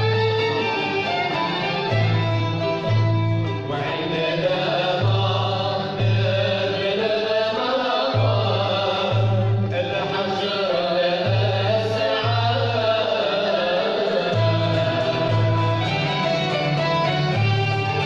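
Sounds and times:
ouds mandolins and violins: 0.0s - 18.0s
voices singing in unison: 3.6s - 18.0s.

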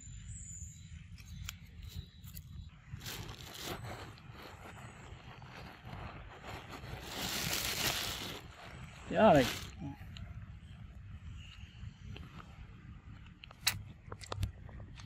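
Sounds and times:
scraping and rustling: 3.0s - 9.8s
loud rustling hiss: 9.1s - 9.8s.

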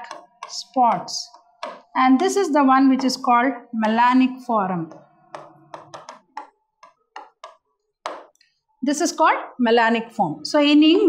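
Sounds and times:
pen tapping on display board: 0.0s - 1.9s, 3.0s - 4.2s, 4.8s - 8.4s.

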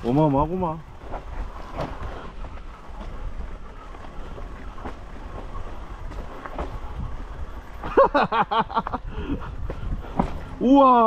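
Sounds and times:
bike tyres clattering over rocks: 0.0s - 11.0s.

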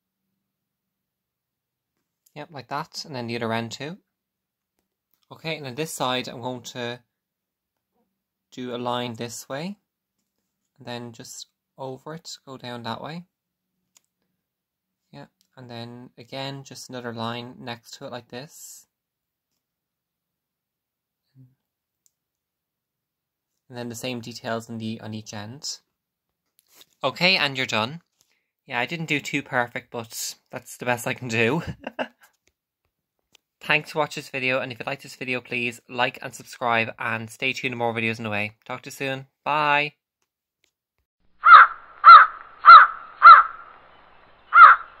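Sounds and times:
bird harsh call: 41.4s - 45.0s.

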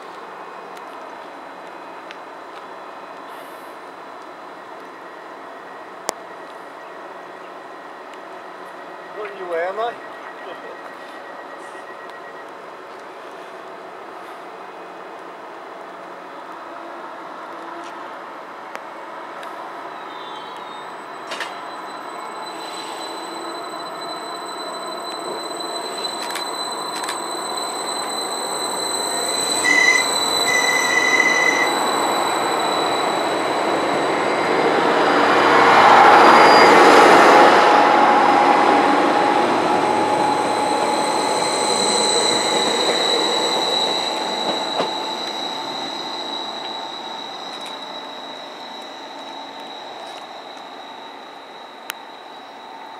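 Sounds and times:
diesel train passing: 0.0s - 52.9s
high-pitched squeal: 19.9s - 52.9s
short high tones: 21.1s - 52.9s.

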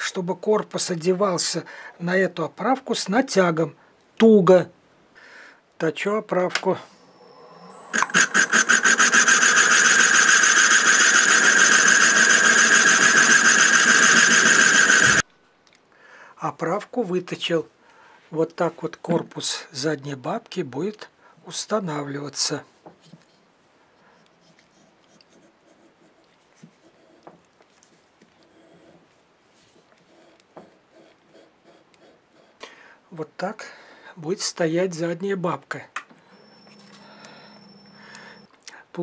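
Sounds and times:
lathe running whine: 6.9s - 15.2s
lathe cutter pulsing into wood: 7.0s - 15.2s.

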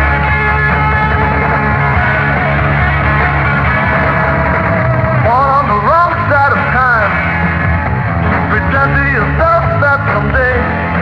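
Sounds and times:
bending sliding guitar lead: 0.0s - 11.0s
blues-rock trio playing: 0.0s - 11.0s.

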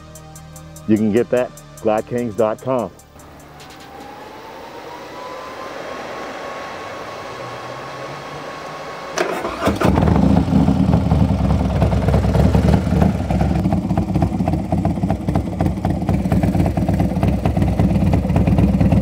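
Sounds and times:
motorcycle engine starting and idling: 3.2s - 19.0s.

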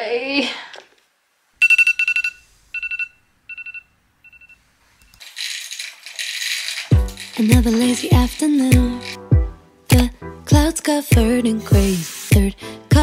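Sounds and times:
soft rushing hiss: 11.8s - 12.5s.

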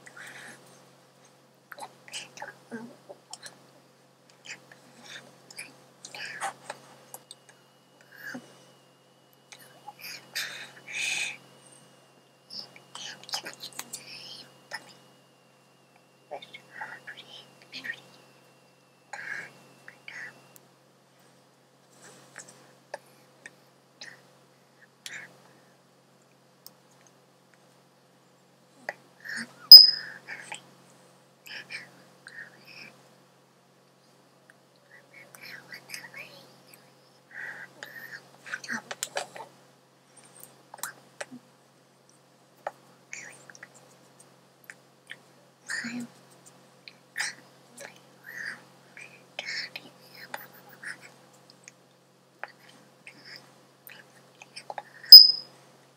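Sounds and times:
person breathy whispering: 0.0s - 0.7s, 1.7s - 3.6s, 4.4s - 6.8s, 8.0s - 8.7s, 9.6s - 11.5s, 12.5s - 15.1s, 16.3s - 18.2s, 19.2s - 20.5s, 29.2s - 30.6s, 31.5s - 33.0s, 37.3s - 39.4s, 45.7s - 46.1s, 47.2s - 51.1s
whispery breath and mouth sounds: 4.3s - 8.9s.

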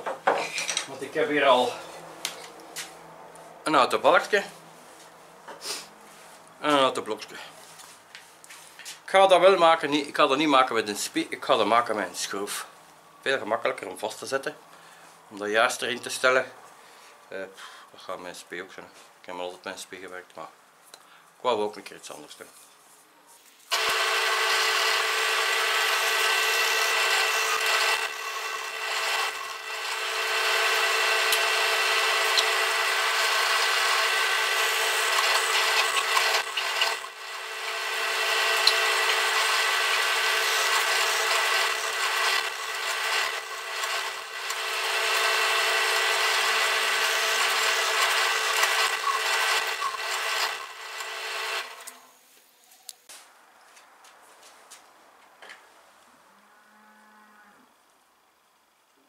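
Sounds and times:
drill bit grinding into wood: 23.7s - 52.0s
drill press motor whine: 23.7s - 52.2s.

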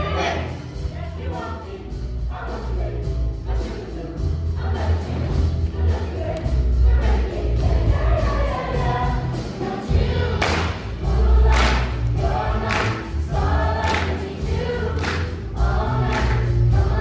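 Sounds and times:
choir singing: 0.0s - 17.0s
instrumental accompaniment with heavy beat: 0.0s - 17.0s.

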